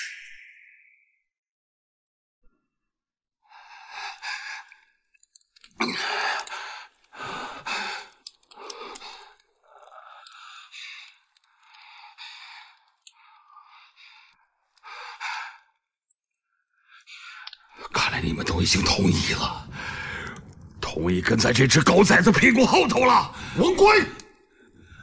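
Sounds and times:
man breathing heavily and gasping: 3.5 - 4.9, 5.7 - 15.8, 19.6 - 20.5, 23.3 - 23.6.

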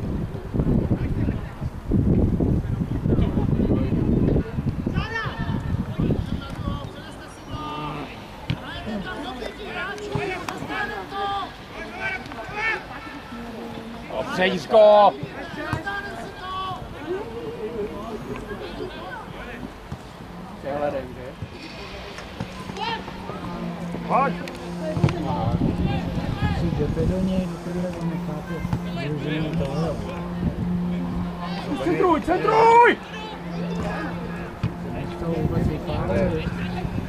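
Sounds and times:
players shouting: 6.2 - 20.6, 21.4 - 37.0
ball being kicked: 34.6 - 34.8.

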